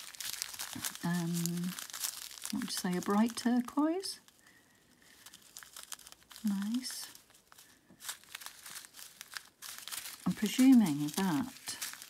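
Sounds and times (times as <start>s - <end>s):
plastic bags crinkling: 0.0s - 12.0s.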